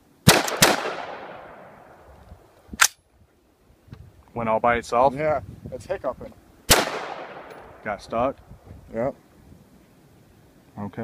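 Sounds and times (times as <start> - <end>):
rifle shots echoing: 0.2 - 2.0, 6.7 - 8.0
people talking: 4.4 - 6.4, 7.8 - 9.2, 10.8 - 11.0.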